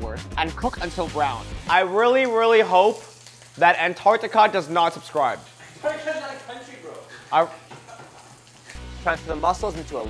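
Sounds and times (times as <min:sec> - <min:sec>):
sausages sizzling in a frying pan: 0:00.5 - 0:10.0.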